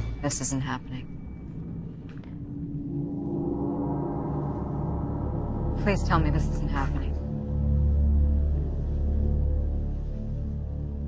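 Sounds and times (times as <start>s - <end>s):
low rumble: 0.0s - 9.6s
sustained low gong-like tone: 0.0s - 9.6s.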